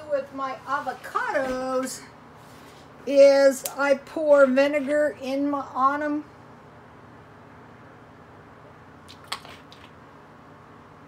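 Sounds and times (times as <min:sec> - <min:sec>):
low room hum: 0:00.0 - 0:11.0
vinegar splashing on avocado: 0:09.0 - 0:10.0.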